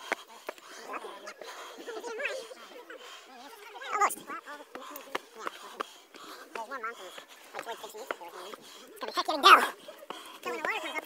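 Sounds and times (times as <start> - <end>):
people calling and chatting: 0.0 - 11.0.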